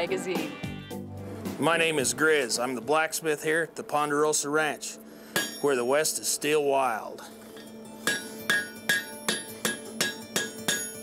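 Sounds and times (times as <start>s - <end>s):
hammer ringing on anvil: 5.3s - 6.1s, 7.6s - 11.0s.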